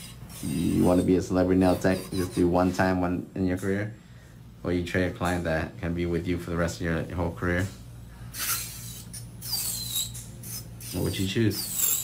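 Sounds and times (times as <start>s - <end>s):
high-pitched scraping: 0.0s - 2.9s, 8.4s - 12.0s
falling squeal: 8.4s - 12.0s.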